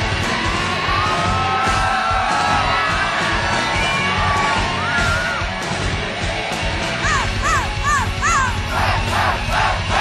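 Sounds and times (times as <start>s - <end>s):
metal band playing live: 0.0s - 10.0s
crowd shouting: 6.9s - 10.0s.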